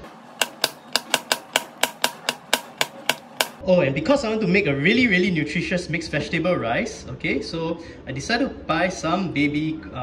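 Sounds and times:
knife chopping on plastic board: 0.0s - 3.6s.

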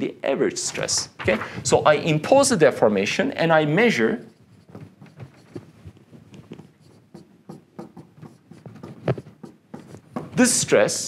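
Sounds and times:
marker writing on whiteboard: 3.8s - 10.7s.

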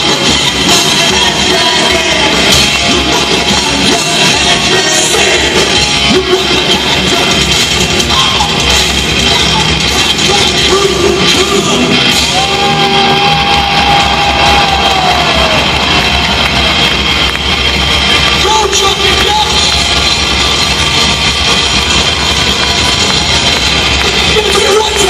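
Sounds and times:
live hard rock band: 0.0s - 25.0s.

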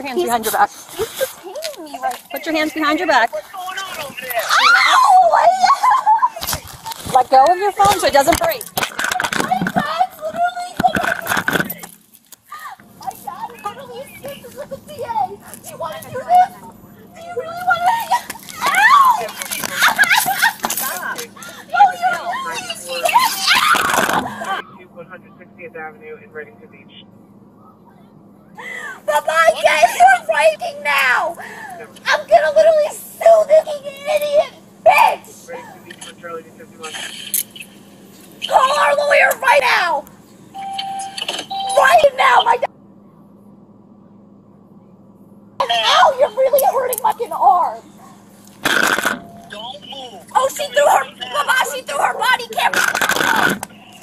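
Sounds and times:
scuffling: 0.0s - 24.6s
faint voices: 0.0s - 40.5s, 41.2s - 54.0s
scraping rustle of struggle: 0.2s - 2.4s, 6.3s - 24.6s, 52.5s - 54.0s.

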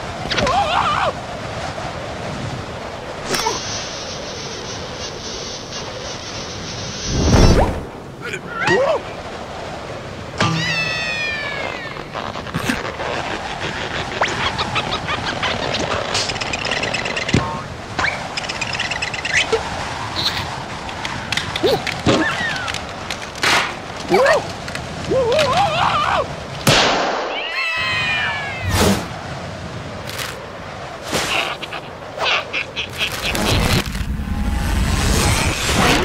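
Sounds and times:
cartoon whining cry: 10.6s - 12.1s, 27.4s - 28.8s.

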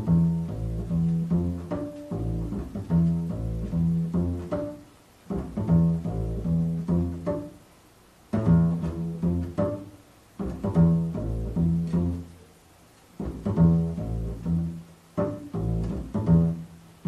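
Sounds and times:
double bass plucked: 0.0s - 17.0s.

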